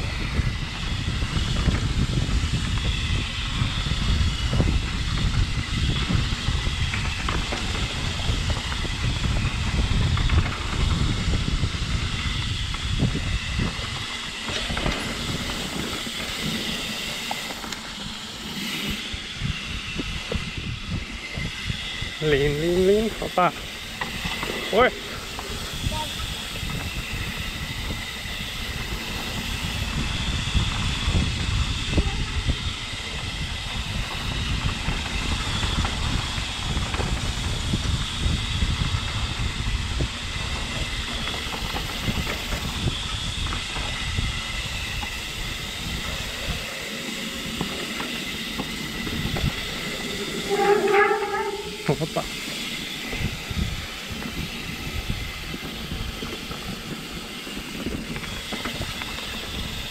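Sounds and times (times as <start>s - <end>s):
steady high whir: 0.0s - 59.9s
tyre and trail rumble: 0.0s - 59.9s
wind on microphone: 0.0s - 59.9s.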